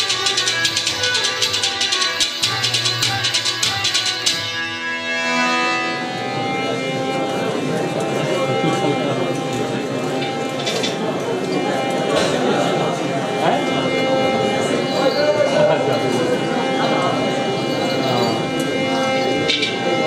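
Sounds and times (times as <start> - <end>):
percussion: 0.0 - 12.7, 13.4 - 20.0
crowd voices: 0.0 - 20.0
held instrumental tone: 0.0 - 20.0
sitar notes: 0.0 - 20.0.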